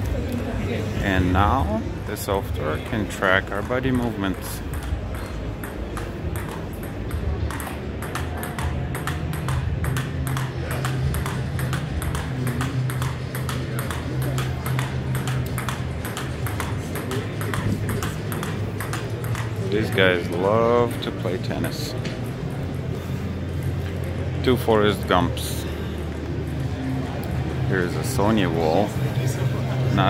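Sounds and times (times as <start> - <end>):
table tennis ball clicking: 3.5 - 20.4.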